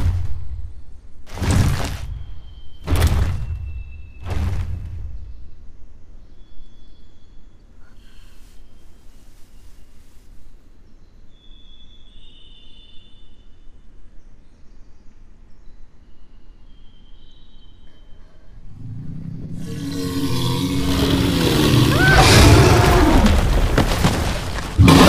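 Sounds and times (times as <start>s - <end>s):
low ambient rumble: 18.3s - 24.9s
dinosaur roar: 18.7s - 23.8s, 24.7s - 25.0s.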